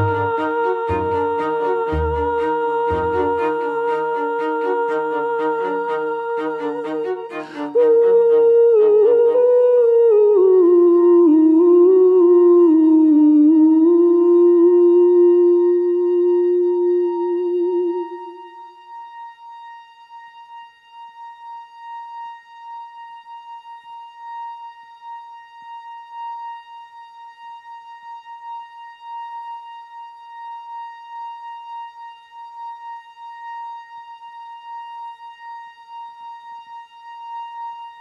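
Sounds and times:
low hummed note with vibrato: 0.0s - 12.0s.

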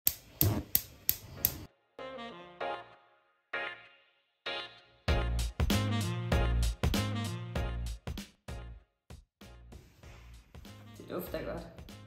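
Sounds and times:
gas hob spark igniter clicking: 0.0s - 1.7s.

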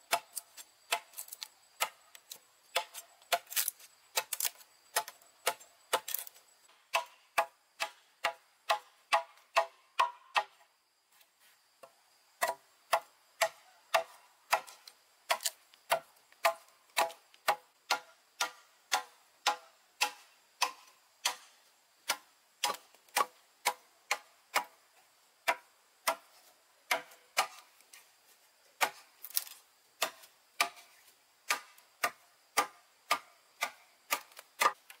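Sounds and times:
machete chopping wood: 0.0s - 2.0s, 2.7s - 10.6s, 12.4s - 24.8s, 25.4s - 27.7s, 28.8s - 35.0s.

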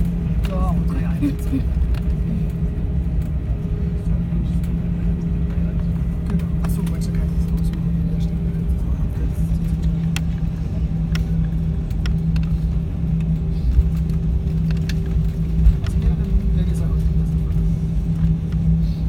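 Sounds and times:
jet engines rumbling: 0.0s - 19.0s
faint clicks and rattles: 9.6s - 18.6s.

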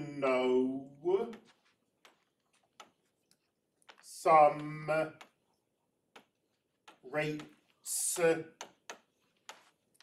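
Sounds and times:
stylus tapping on tablet screen: 1.2s - 10.0s.

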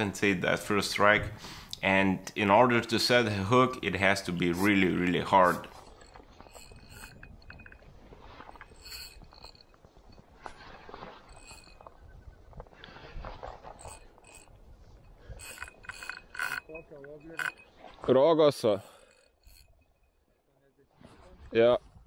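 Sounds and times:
spinning reel cranking: 4.0s - 12.0s, 13.4s - 17.8s, 18.6s - 20.1s.

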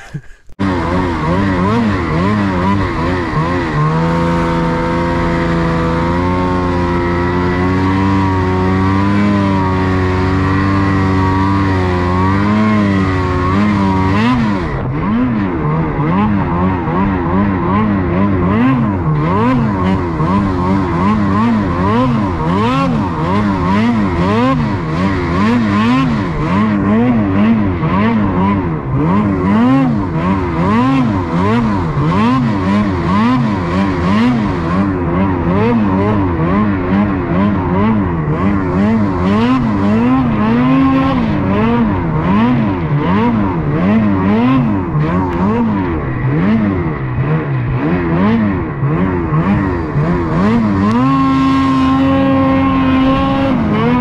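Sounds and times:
snowmobile engine revving: 0.0s - 54.0s.

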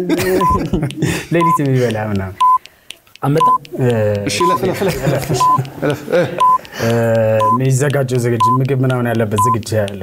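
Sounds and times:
man talking: 0.0s - 2.4s, 3.2s - 10.0s
countdown clock beeping: 0.2s - 10.0s.

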